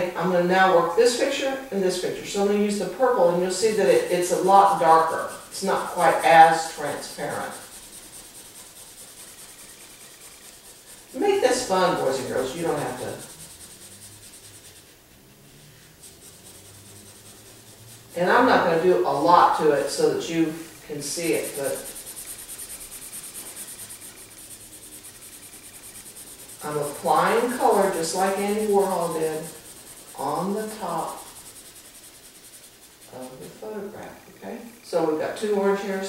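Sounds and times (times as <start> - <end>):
highlighter rubbing on paper: 1.1 - 33.9.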